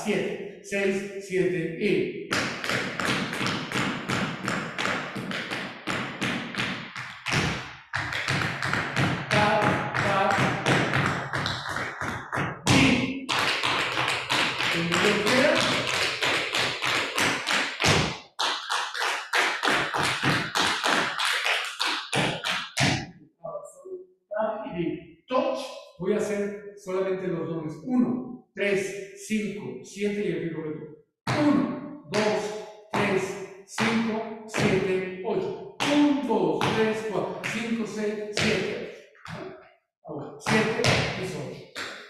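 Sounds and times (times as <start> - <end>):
tap shoes on hard floor: 2.3 - 23.0, 38.4 - 39.5.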